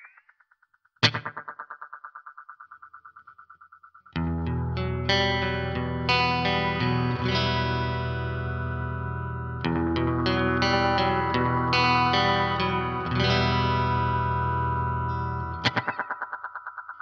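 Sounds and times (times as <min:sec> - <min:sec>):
electric guitar with delay echoes: 0:00.0 - 0:17.0
strummed guitar chords: 0:04.2 - 0:17.0.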